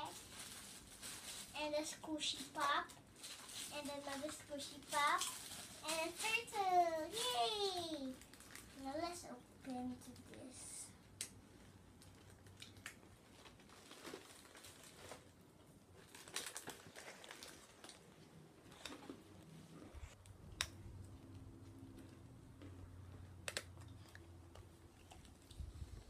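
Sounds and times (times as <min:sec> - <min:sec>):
plastic clicks and crinkles: 0:11.2 - 0:15.4, 0:16.0 - 0:19.2, 0:22.0 - 0:25.5.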